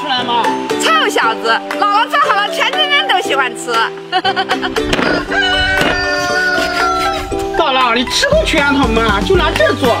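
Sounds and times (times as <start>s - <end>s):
background music: 0.0s - 10.0s
rooster crowing: 5.0s - 7.3s.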